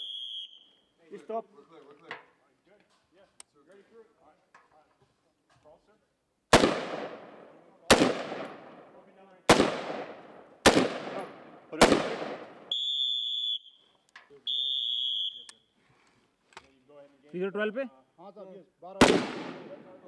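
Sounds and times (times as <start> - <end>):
high-pitched whistle tones: 0.0 - 0.9, 12.7 - 15.8
rifle shots with echo: 6.5 - 12.7, 19.0 - 20.0.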